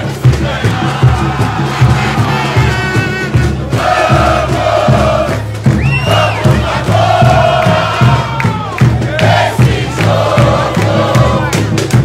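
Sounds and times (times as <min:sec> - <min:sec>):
crowd singing a chant: 0:00.0 - 0:12.0
steady drum beat: 0:00.0 - 0:12.0.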